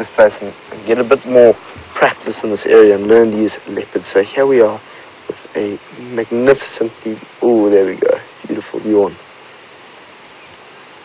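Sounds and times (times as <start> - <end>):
man's voice: 0.0 - 9.2
steady background hiss: 0.0 - 11.0.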